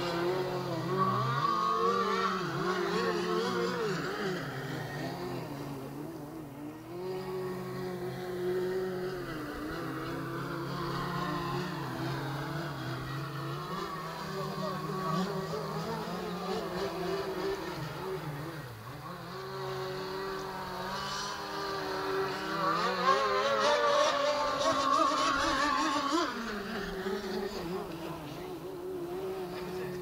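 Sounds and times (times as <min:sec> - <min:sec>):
racing boat motor whining: 0:00.0 - 0:30.0.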